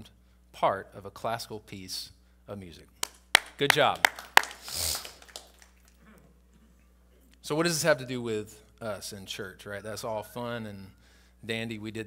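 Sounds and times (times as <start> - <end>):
sharp hand clap: 3.0 - 6.0.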